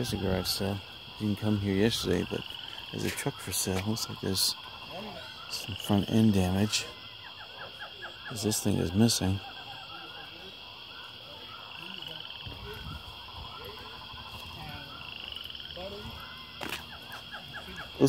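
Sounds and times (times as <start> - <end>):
faint voices: 0.0 - 18.0
small chirping calls: 0.0 - 18.0.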